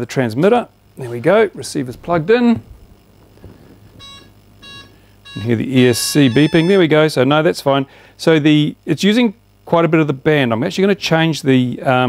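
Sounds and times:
short quiet beeps: 0:04.0 - 0:06.8.

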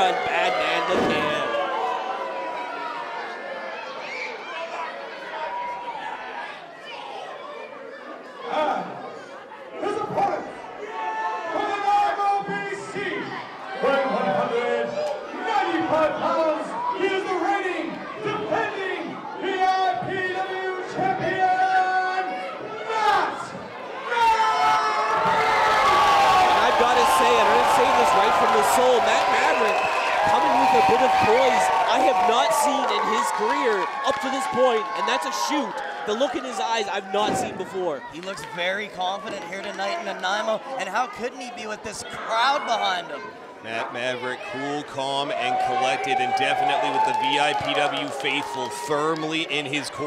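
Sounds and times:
crowd chatter: 0:00.0 - 0:50.0.

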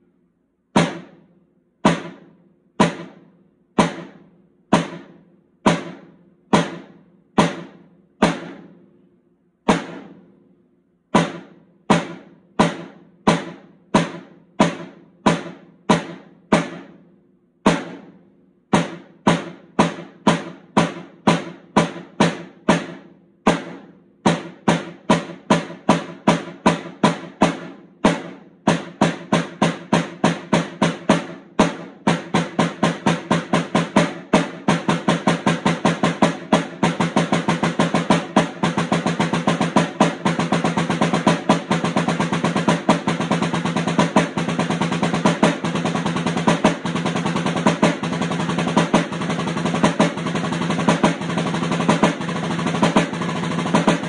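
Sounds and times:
snare drum roll: 0:00.8 - 0:08.9, 0:09.7 - 0:10.5, 0:11.1 - 0:54.0.

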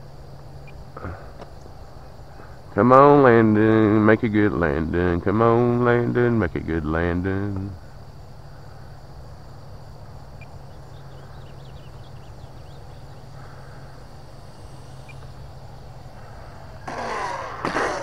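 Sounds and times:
model plane motor humming: 0:09.6 - 0:18.0
wavering noise burst: 0:10.2 - 0:18.0
plane touchdown knock: 0:11.8 - 0:18.0.

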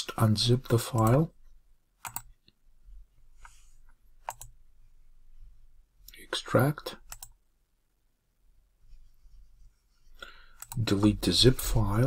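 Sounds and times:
computer mouse clicks: 0:02.0 - 0:02.6, 0:04.2 - 0:04.6, 0:07.0 - 0:07.4, 0:10.5 - 0:11.0.

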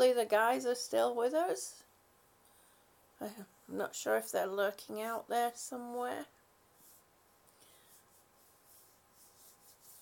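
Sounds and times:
palms rubbing together: 0:06.7 - 0:10.0.

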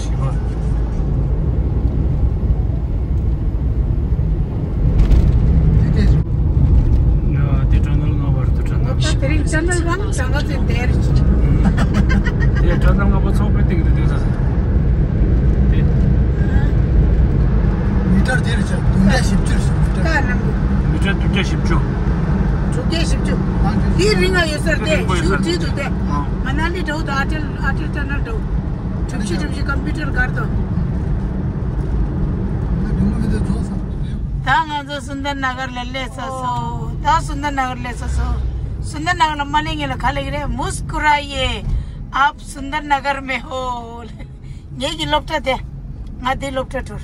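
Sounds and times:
car engine and road noise: 0:00.0 - 0:47.0.

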